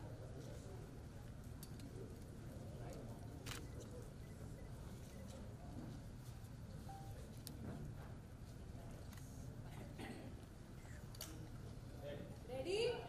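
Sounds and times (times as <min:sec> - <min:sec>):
faint background hum: 0:00.0 - 0:13.0.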